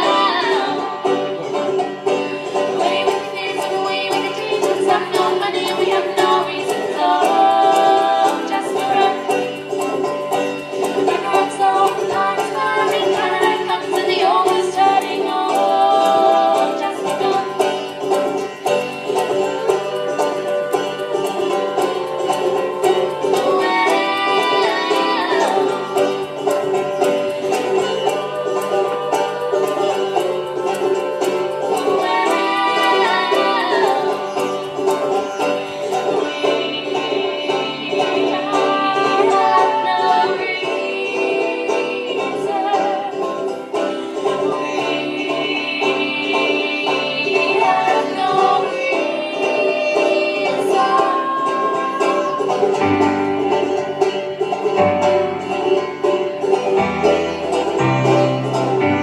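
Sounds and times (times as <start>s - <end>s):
woman singing: 0.0s - 1.3s, 2.4s - 10.1s, 10.8s - 54.0s
banjo picking: 0.0s - 59.0s.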